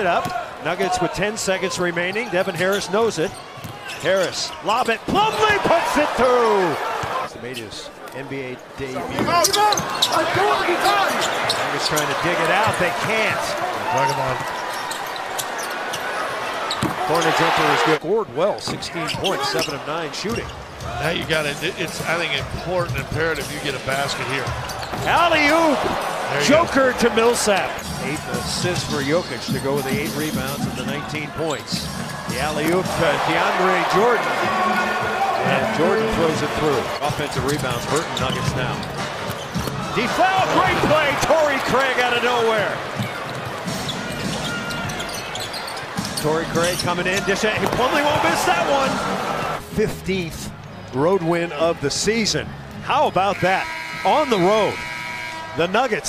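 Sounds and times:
sounds of play on court: 0:00.0 - 0:56.0
arena crowd cheering: 0:04.6 - 0:07.3, 0:09.2 - 0:18.0, 0:25.0 - 0:28.5, 0:32.0 - 0:38.1, 0:39.7 - 0:45.2, 0:46.6 - 0:49.6, 0:52.9 - 0:56.0.

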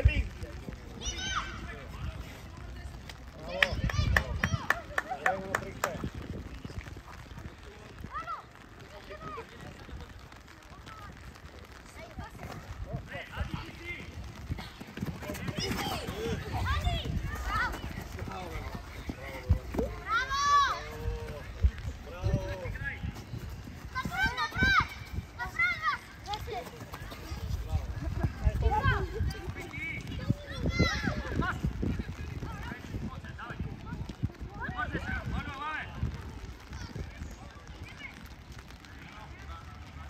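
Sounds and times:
feet running on artificial turf: 0:03.5 - 0:38.3.

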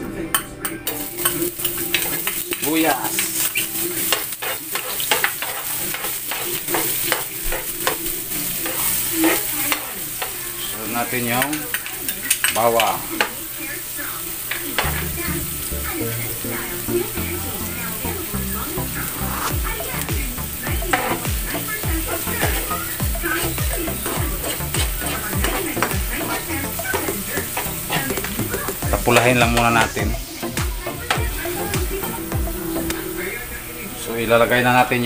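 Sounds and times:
metal spoon stirring in pan: 0:00.8 - 0:32.8
garlic and onion sizzling in oil: 0:00.8 - 0:35.0
background music with low beat: 0:19.1 - 0:33.2.

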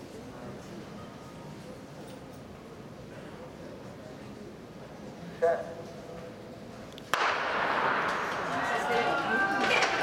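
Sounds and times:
starter's pistol crack: 0:07.1 - 0:08.4
spectators cheering and shouting: 0:08.2 - 0:10.0.

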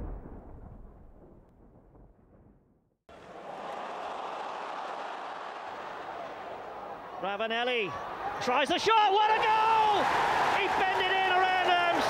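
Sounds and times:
stadium crowd hum: 0:03.1 - 0:12.0.

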